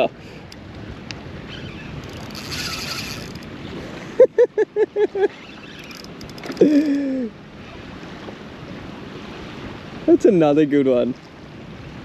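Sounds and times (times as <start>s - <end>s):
water lapping against boat hull: 0.7s - 4.2s, 5.0s - 9.7s.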